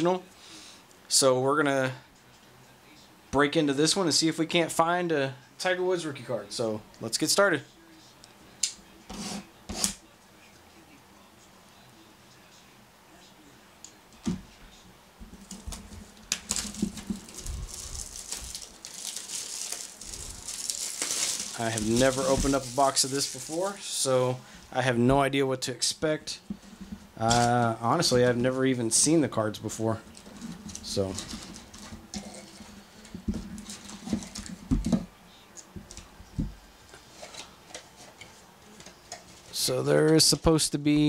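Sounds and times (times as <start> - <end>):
plastic shrink wrap crinkling and tearing: 15.4 - 24.0.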